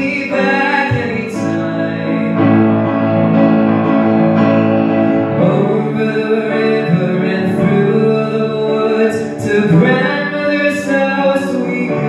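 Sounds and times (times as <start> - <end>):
young man singing: 0.0 - 3.0, 5.2 - 12.0
grand piano chords: 0.0 - 12.0.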